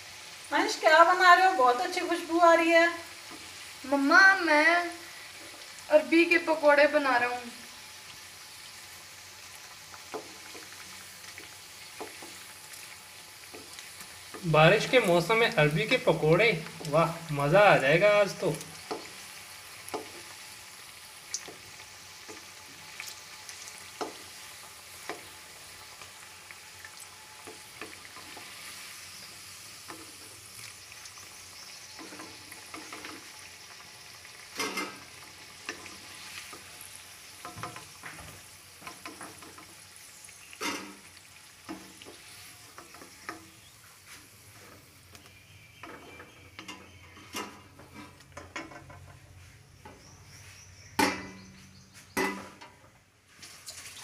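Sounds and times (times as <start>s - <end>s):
pakoras sizzling in hot oil: 0.0s - 54.0s.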